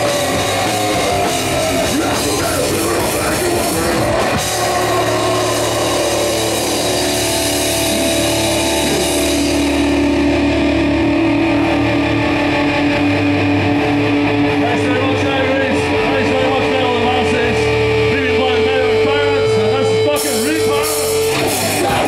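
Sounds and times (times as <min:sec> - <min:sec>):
distorted guitars and bass chord: 0:00.0 - 0:22.0.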